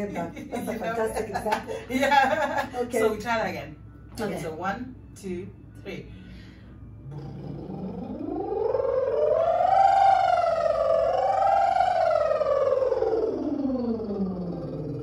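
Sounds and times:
woman's lip trill pitch glide: 7.0s - 15.0s.

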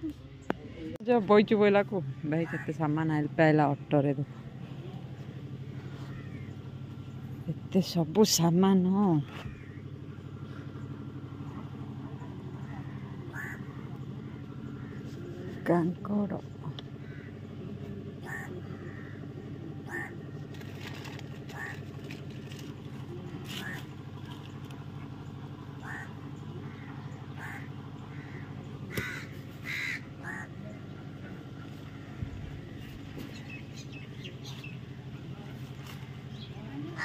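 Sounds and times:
steady low hum: 0.0s - 37.0s
crows cawing: 5.7s - 6.8s, 9.4s - 9.9s, 12.6s - 15.7s, 16.7s - 22.6s, 23.5s - 24.0s, 25.8s - 31.2s, 36.3s - 37.0s.

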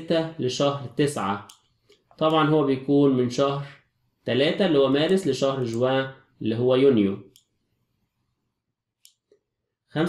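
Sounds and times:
man speaking: 0.0s - 1.5s, 2.2s - 7.4s
computer mouse click: 9.0s - 9.4s.

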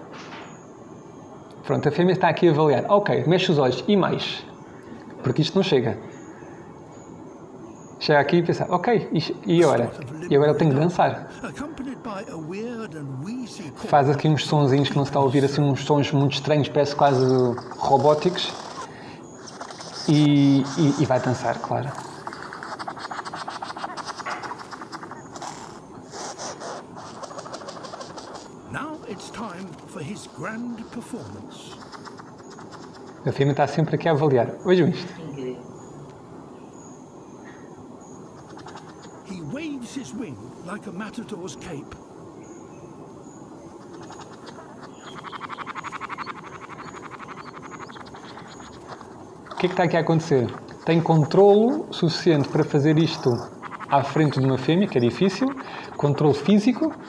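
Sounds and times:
bird making dry clicks: 16.9s - 33.4s, 38.2s - 40.7s, 43.7s - 57.0s.

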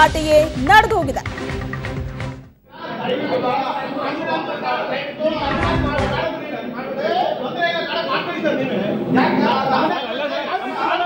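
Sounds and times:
men arguing: 2.7s - 11.0s.

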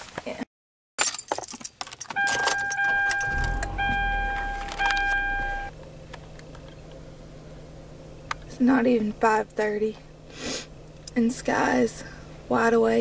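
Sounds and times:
keys jangling: 1.0s - 3.7s
car dashboard chime: 2.2s - 5.7s
car engine starting and idling: 2.2s - 13.0s.

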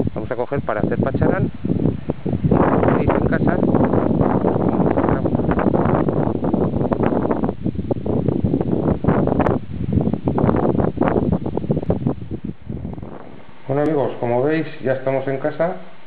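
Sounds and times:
wind buffeting microphone: 0.0s - 15.2s.

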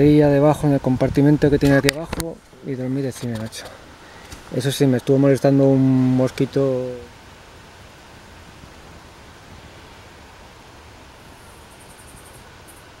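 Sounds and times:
outdoor background hiss: 0.0s - 13.0s.

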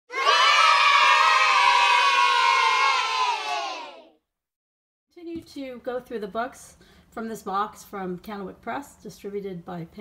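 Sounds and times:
children cheering: 0.1s - 4.1s.

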